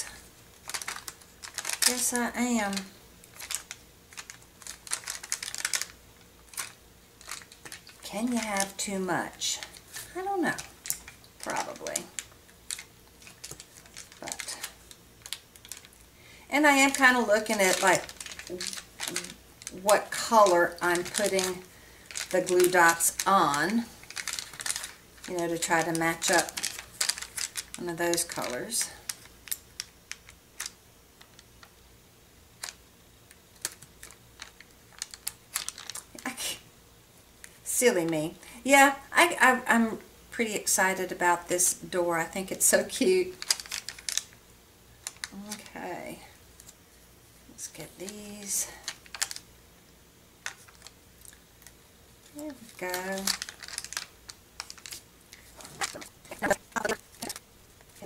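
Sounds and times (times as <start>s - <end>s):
plastic sheet clicks and crinkles: 0.1s - 8.9s, 9.6s - 16.1s, 16.8s - 31.8s, 32.6s - 36.3s, 42.9s - 44.4s, 45.0s - 45.8s, 48.1s - 49.5s, 50.4s - 58.0s
plastic sheet handling: 16.8s - 30.7s, 43.3s - 44.3s, 52.3s - 58.0s.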